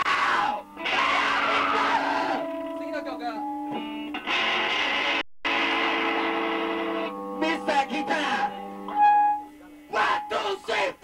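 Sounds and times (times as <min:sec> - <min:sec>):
electric guitar feedback squealing: 0:00.0 - 0:10.3.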